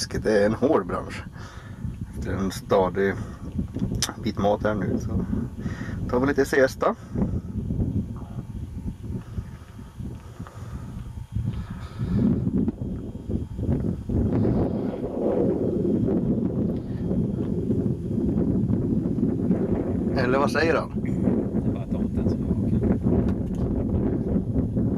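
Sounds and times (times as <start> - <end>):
wind buffeting microphone: 0.0 - 24.9.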